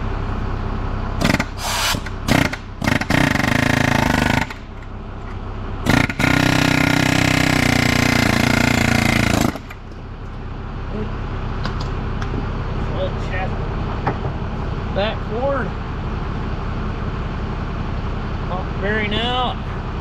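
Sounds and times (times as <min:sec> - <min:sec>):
pneumatic air hammer bursts: 0:01.2 - 0:04.9, 0:05.8 - 0:09.8.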